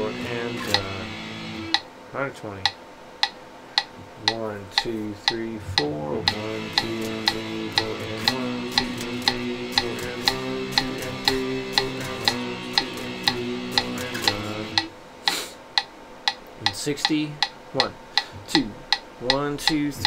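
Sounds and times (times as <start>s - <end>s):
electric guitar power chords: 0.0s - 1.8s, 5.4s - 14.9s
metronome clicking: 0.7s - 0.9s, 2.6s - 20.0s.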